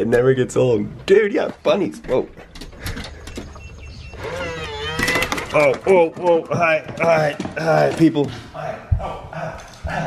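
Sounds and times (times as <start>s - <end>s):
keypad short beeps: 3.2s - 4.2s.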